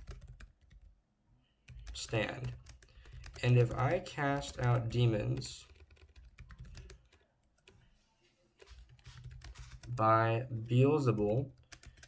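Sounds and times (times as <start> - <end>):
keyboard typing: 0.0 - 0.9, 1.6 - 7.8, 8.6 - 12.0.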